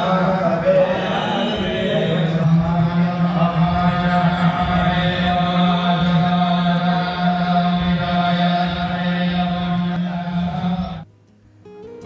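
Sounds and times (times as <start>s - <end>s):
priests chanting over loudspeakers: 0.0s - 11.1s.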